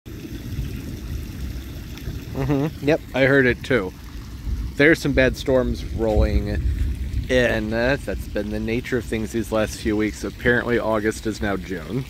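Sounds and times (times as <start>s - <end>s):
distant thunder rumbling: 4.2s - 10.3s.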